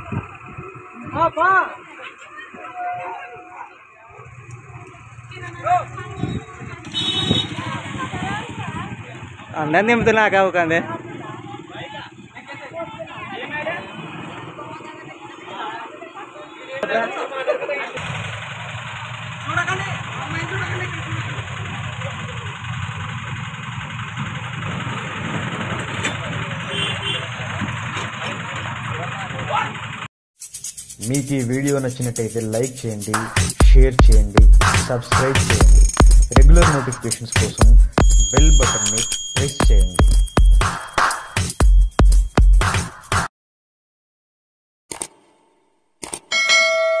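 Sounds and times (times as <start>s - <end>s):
bus engine idling: 0.0s - 9.7s, 10.9s - 30.1s
people talking: 0.0s - 18.0s, 19.4s - 22.6s, 31.0s - 40.1s
notification bell chime: 38.0s - 42.1s, 46.3s - 47.0s.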